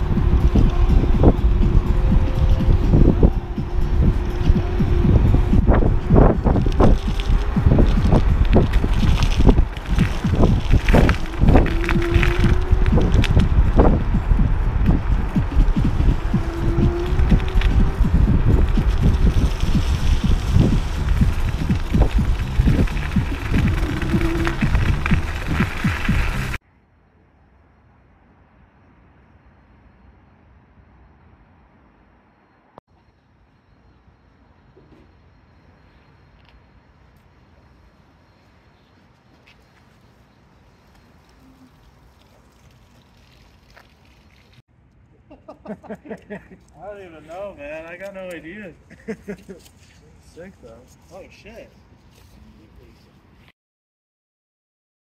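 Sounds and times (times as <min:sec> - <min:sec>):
scooter wheel rumble: 0:00.0 - 0:26.6, 0:39.3 - 0:44.6
wind buffeting microphone: 0:00.0 - 0:26.6.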